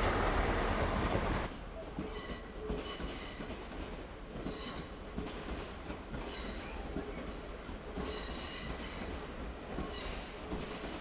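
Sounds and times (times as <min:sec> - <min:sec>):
train rumbling past: 0:00.0 - 0:11.0
train wheels squealing on rails: 0:01.8 - 0:03.6, 0:04.3 - 0:11.0.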